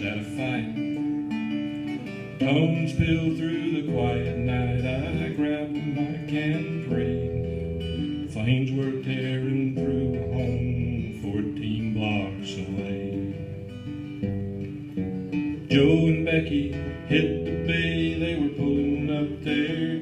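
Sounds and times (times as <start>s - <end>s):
acoustic guitar chords: 0.0s - 20.0s
person singing: 2.2s - 13.8s, 15.6s - 20.0s.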